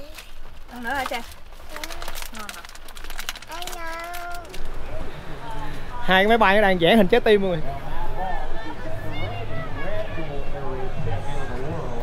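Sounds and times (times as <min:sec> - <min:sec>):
small child's voice: 0:00.0 - 0:00.4, 0:01.7 - 0:02.3, 0:03.4 - 0:04.6, 0:08.9 - 0:10.2.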